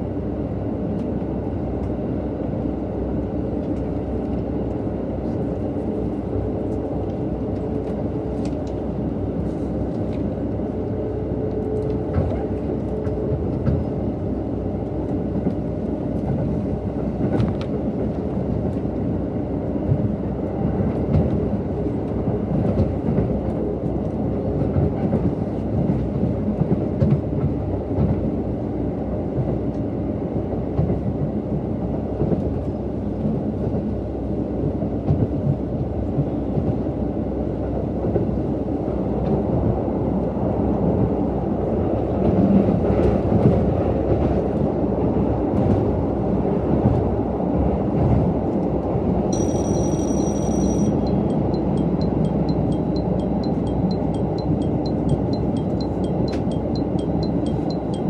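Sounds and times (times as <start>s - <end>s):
train wheels on rails: 11.4s - 28.4s, 40.7s - 58.0s.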